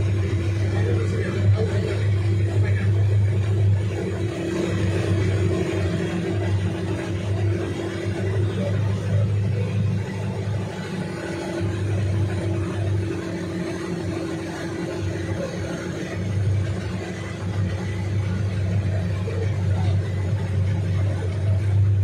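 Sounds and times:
motor engine running: 0:00.0 - 0:22.0
water wake: 0:00.0 - 0:22.0.

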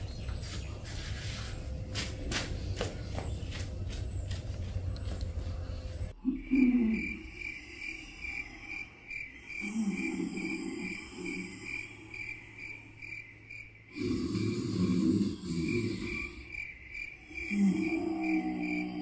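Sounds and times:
low rough rumble: 0:00.0 - 0:06.2
crickets chirping: 0:00.0 - 0:19.0.

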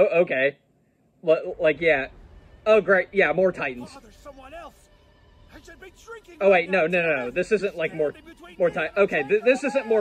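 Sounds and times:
quiet music: 0:01.2 - 0:10.0.

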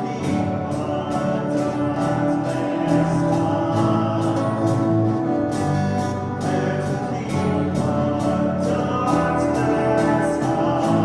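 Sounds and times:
keyboards playing: 0:00.0 - 0:11.0
people singing: 0:00.0 - 0:11.0.

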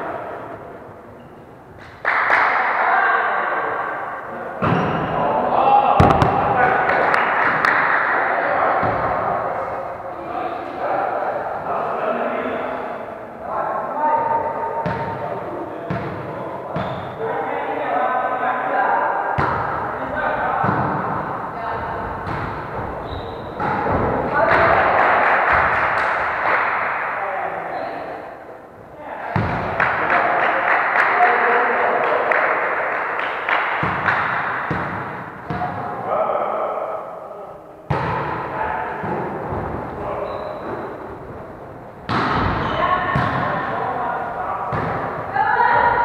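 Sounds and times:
players' voices and shouts: 0:02.1 - 0:46.0
ball hitting wooden floor: 0:06.0 - 0:06.6
hands striking volleyball: 0:33.6 - 0:35.8.

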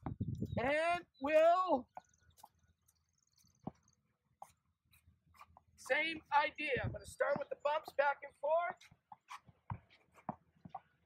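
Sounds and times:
tennis ball tapping racket: 0:07.2 - 0:08.1, 0:08.8 - 0:11.0.

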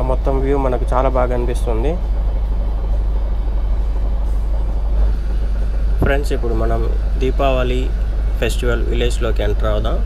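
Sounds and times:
constant deep rumble: 0:00.0 - 0:10.0.

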